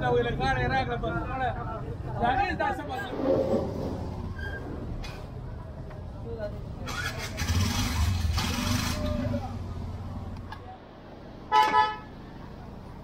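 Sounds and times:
vehicle rumbling past: 2.8s - 5.5s, 6.8s - 10.5s
vehicle horn toots: 11.5s - 12.1s.

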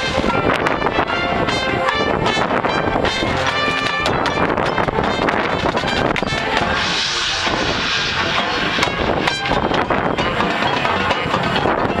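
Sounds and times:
brass and woodwinds: 0.0s - 11.2s
drums: 0.0s - 12.0s
bright high wash: 1.0s - 11.4s.

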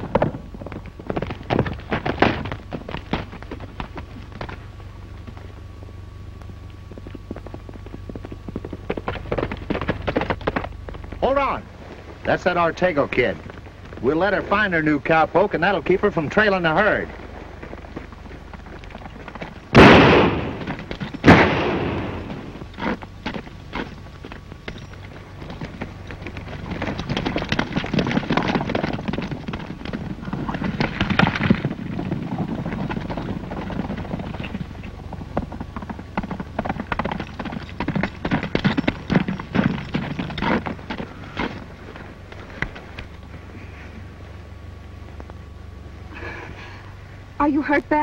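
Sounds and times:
horse hoofbeats on turf: 0.0s - 43.8s
gunshots with ringing tail: 19.7s - 22.6s.

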